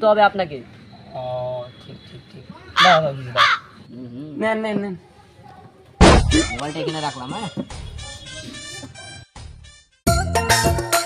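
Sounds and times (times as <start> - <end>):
crow cawing: 2.6 - 3.8.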